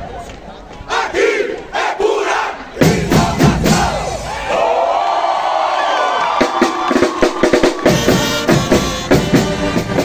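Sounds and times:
marching band music: 0.9 - 4.3, 6.4 - 10.0
group of voices shouting: 0.9 - 8.0
drum hits: 2.8 - 4.2, 6.4 - 10.0.

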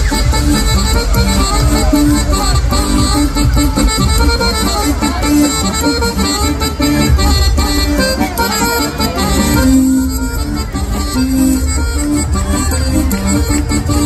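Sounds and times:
accordion folk dance music: 0.0 - 14.0.

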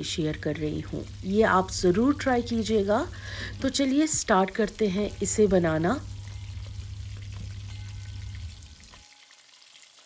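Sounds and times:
low background hum: 0.0 - 9.0
meat sizzling in oil: 0.0 - 10.0.

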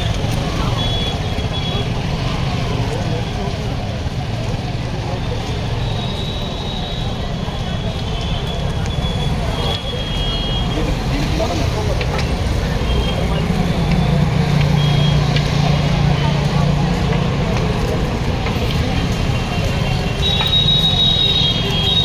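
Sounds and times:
traffic engine noise: 0.0 - 22.0.

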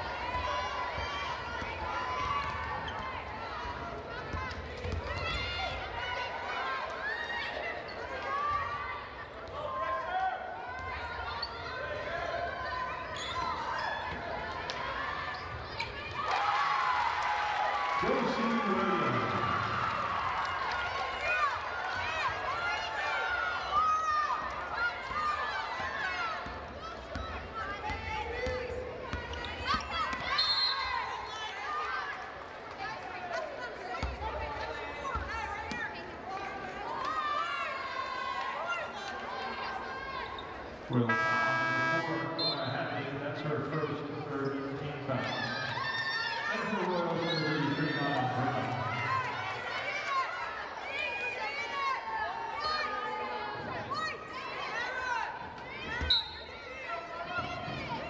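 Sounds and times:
players and spectators shouting: 0.0 - 44.2, 45.1 - 58.0.

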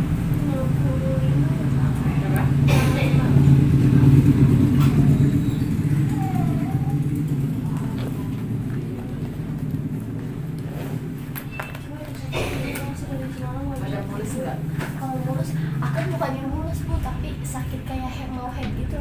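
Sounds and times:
faint voices: 0.0 - 10.8
steady low rumble: 0.0 - 19.0.

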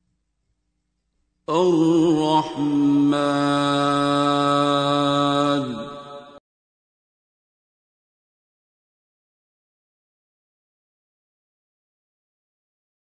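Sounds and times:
man reciting melodically: 1.5 - 6.4.

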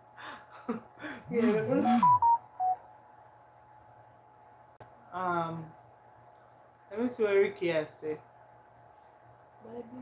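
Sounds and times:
faint steady hum: 0.0 - 10.0
short electronic beeps: 1.8 - 2.8.

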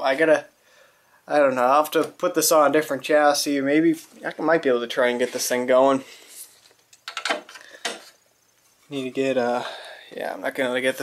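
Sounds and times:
sharp clicks and knocks: 6.7 - 8.2.

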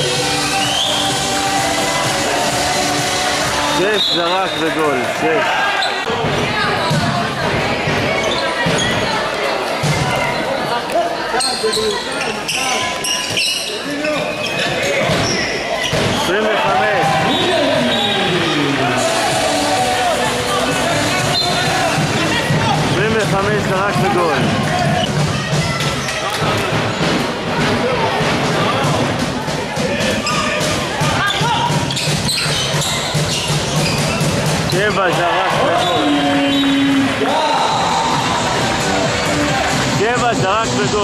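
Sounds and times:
people shouting in a hall: 0.0 - 14.0, 14.7 - 23.0, 24.1 - 40.2.

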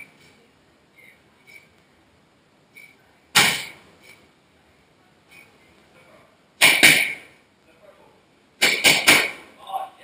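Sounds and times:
strikes on training pad: 3.4 - 3.8, 6.6 - 7.4, 8.6 - 9.5.

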